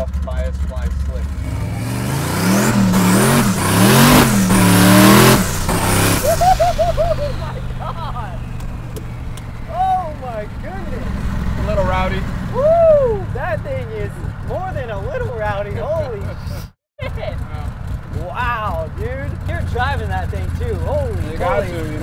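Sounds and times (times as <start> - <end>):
car engine at full throttle: 0.0 - 22.0
laughter: 6.2 - 8.4, 16.1 - 17.5.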